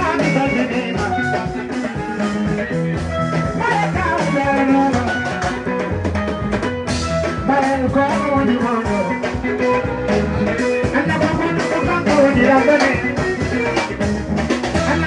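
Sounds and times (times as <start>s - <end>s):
drum kit beat: 0.0s - 15.0s
electric guitar: 0.0s - 15.0s.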